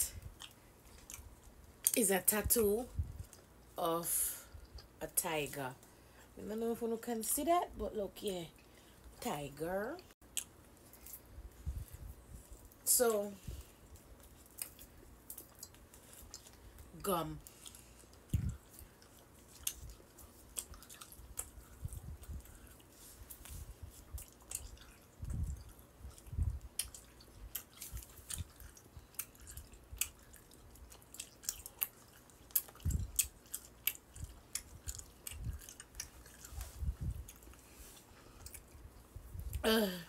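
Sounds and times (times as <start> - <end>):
person chewing gum: 0.1 - 2.0, 13.8 - 39.7.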